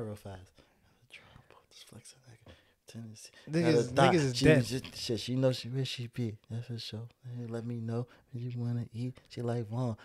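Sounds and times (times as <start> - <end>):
man whispering: 0.0 - 4.2.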